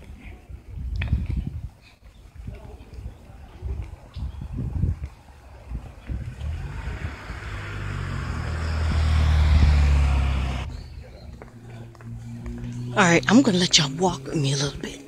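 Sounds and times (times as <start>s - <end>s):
tyre noise: 3.8s - 12.7s
vehicle engine hum: 4.8s - 15.0s.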